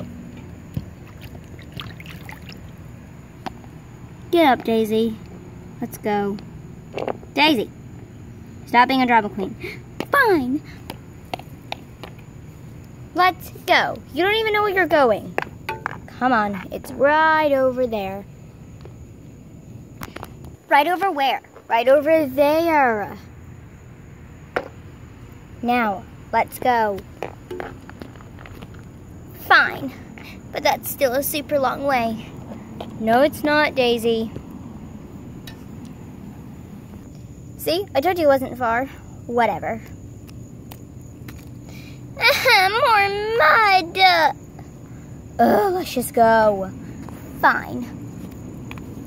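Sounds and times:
faint outdoor background: 0.0 - 49.0
low steady background rumble: 0.0 - 49.0
plastic toys set on concrete: 6.9 - 7.3, 27.0 - 29.0
plastic toy knocking on concrete: 15.4 - 16.1, 24.6 - 24.8, 27.2 - 28.2.

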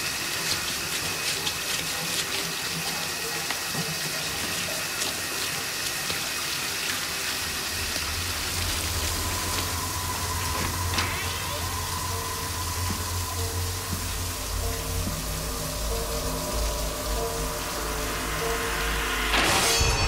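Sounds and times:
shower spray running: 0.0 - 20.0
low droning music: 7.5 - 20.0.

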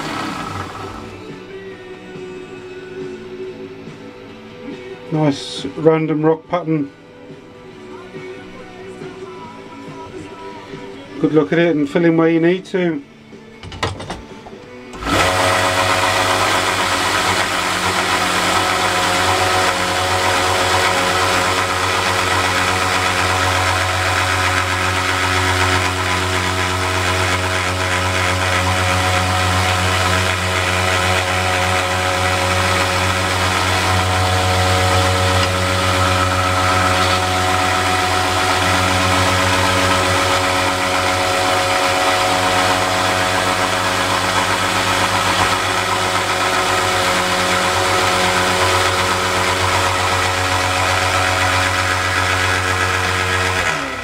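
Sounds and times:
belt sander motor humming: 0.0 - 1.2, 14.9 - 54.0
motor spinning down: 0.0 - 1.3, 14.9 - 54.0.

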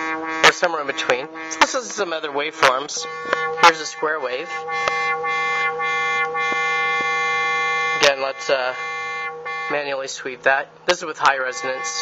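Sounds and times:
low buzzy synthesizer tone: 0.0 - 10.2, 11.4 - 12.0.

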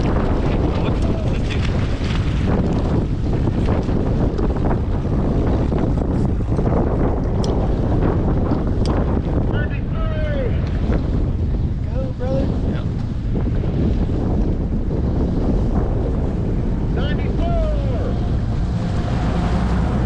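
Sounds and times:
boat engine rumbling: 0.0 - 20.0
water noise: 0.0 - 20.0
wind noise on microphone: 0.0 - 20.0.

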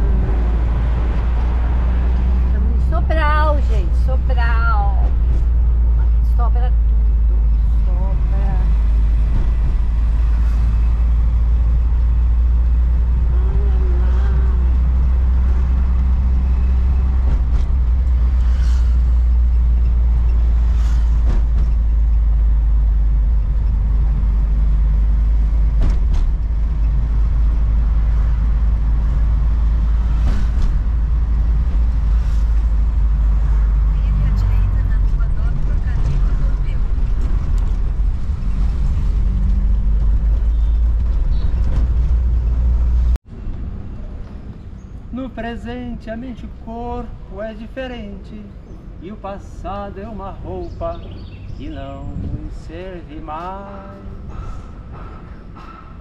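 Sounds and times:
road noise: 0.0 - 56.0
van engine rumble: 0.0 - 56.0.

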